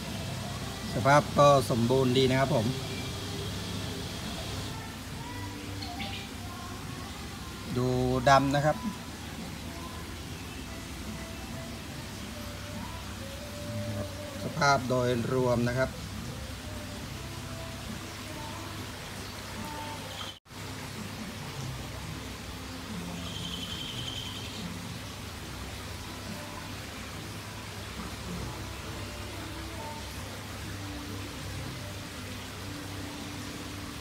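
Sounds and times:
running water hissing: 0.0s - 34.0s.

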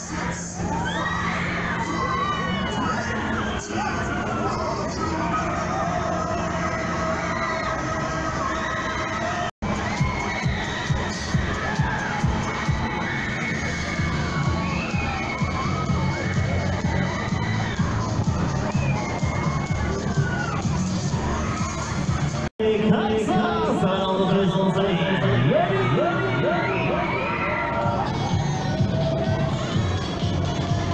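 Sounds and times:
crowd of riders screaming: 0.0s - 22.4s, 23.5s - 30.9s.

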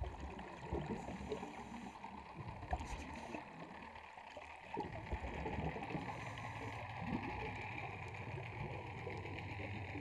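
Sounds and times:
muffled underwater hum: 0.0s - 10.0s.

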